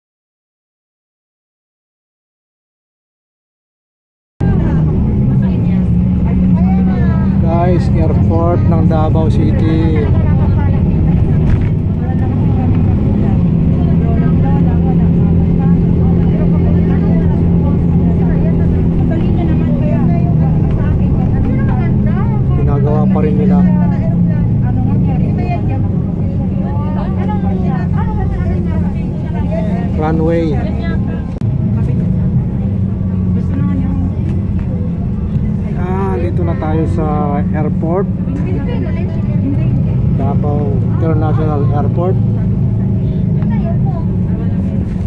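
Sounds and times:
people talking: 4.4 - 45.0
vehicle engine drone: 4.4 - 45.0.

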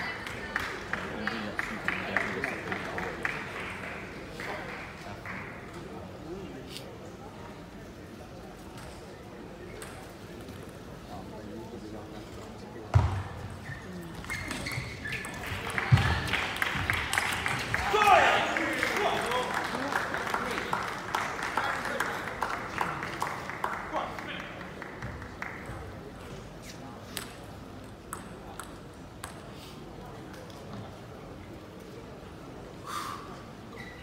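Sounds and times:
murmur of arena crowd: 0.0 - 34.0.

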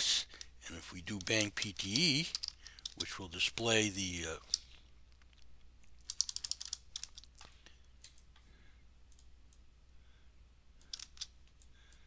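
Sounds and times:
computer keyboard keystrokes: 1.2 - 3.0, 5.8 - 8.3, 10.8 - 12.0.

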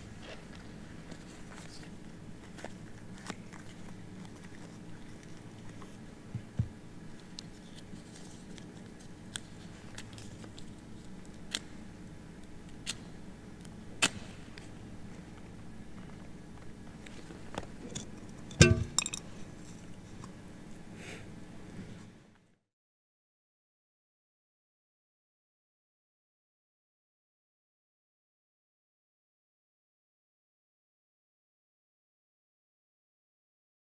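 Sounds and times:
steady low hum: 0.0 - 22.6
thump with metallic ring: 18.6 - 19.2.

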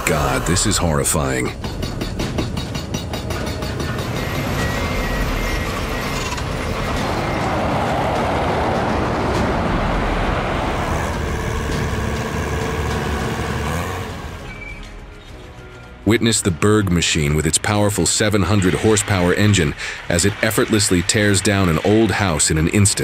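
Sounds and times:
heavy truck passing: 1.5 - 16.1, 18.4 - 22.1
hydraulic breaker hammering rock: 1.6 - 7.4, 10.7 - 14.4.

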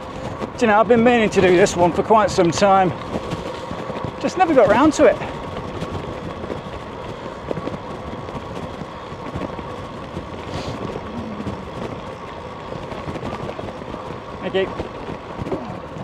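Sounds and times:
bike tyres rumbling on tarmac: 0.0 - 16.0
rushing air: 10.4 - 12.1.

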